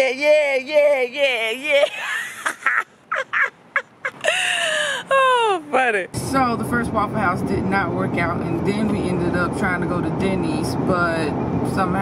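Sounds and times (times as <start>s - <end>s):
woman laughing: 1.4s - 5.6s.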